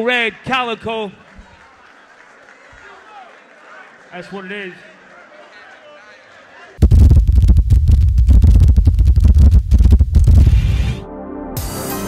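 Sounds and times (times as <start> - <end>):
deep rumble with crackling: 6.8 - 11.0.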